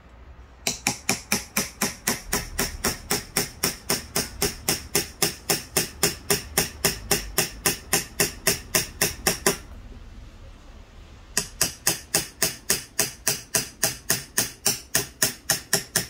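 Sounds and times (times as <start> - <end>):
hammer tapping carving knife: 0.6 - 9.7, 11.4 - 16.0.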